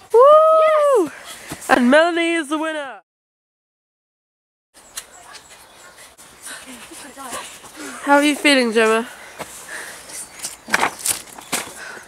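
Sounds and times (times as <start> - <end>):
footsteps on dirt path: 5.0 - 12.0.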